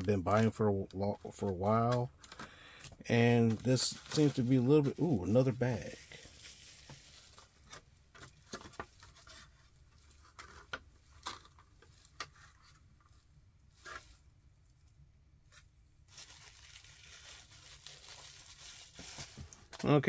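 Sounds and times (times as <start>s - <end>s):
plastic packaging rustling: 1.7s - 12.7s, 16.0s - 19.7s.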